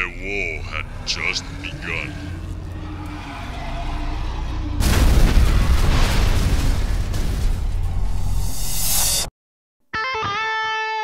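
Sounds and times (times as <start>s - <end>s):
low rumble: 0.0s - 9.2s
explosion blast: 4.8s - 9.0s.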